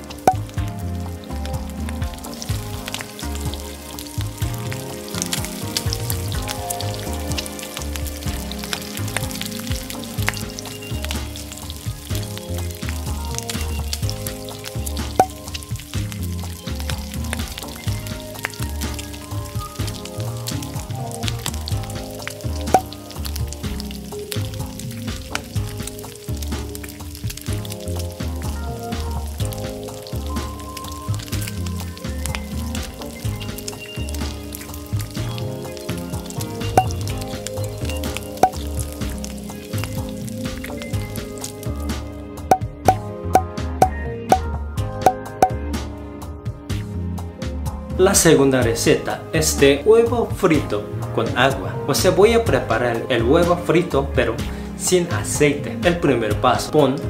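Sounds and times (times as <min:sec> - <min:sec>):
egg sizzling in a frying pan: 0:00.0 - 0:43.0
background music with steady beat: 0:00.0 - 0:57.0.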